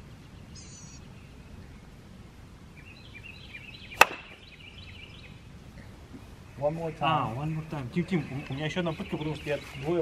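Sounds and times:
mallet striking croquet ball: 4.0 - 4.3.

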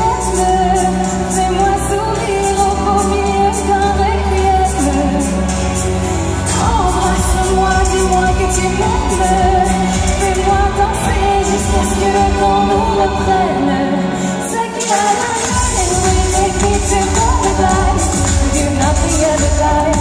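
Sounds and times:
woman singing pop song: 0.0 - 20.0
steady beat: 15.3 - 20.0.

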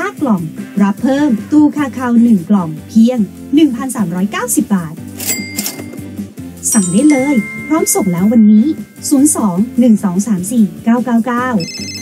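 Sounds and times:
background music: 0.0 - 12.0
cash register ka-ching: 5.1 - 6.2, 6.8 - 9.0.

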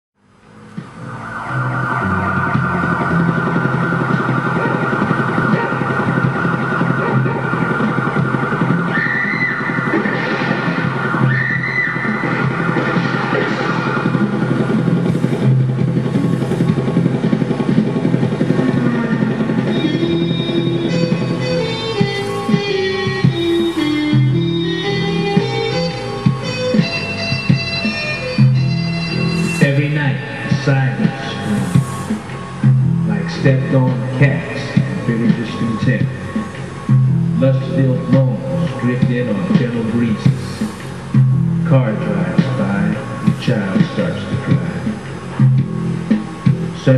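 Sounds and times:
smooth jazz keyboards and sax: 14.6 - 46.9.

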